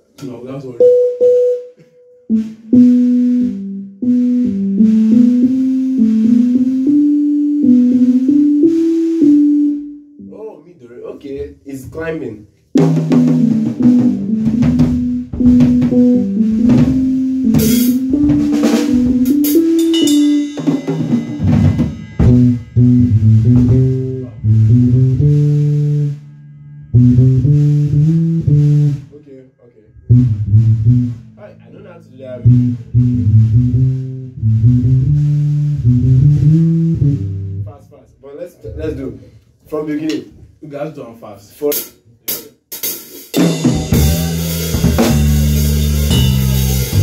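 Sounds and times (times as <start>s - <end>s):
electric bass guitar: 12.8s - 20.0s, 21.4s - 26.2s, 26.9s - 29.0s, 30.0s - 37.7s, 43.6s - 47.0s
drum kit with snare: 12.8s - 26.1s, 27.0s - 29.0s, 30.1s - 31.4s, 32.4s - 37.2s, 41.6s - 47.0s.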